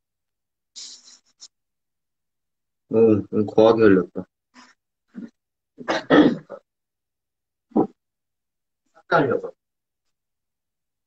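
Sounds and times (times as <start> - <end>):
man clearing his throat: 5.8 - 6.7.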